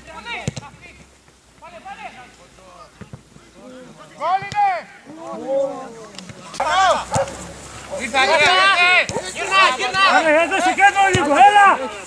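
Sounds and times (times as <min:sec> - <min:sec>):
dog barking and yapping: 0:07.0 - 0:09.4.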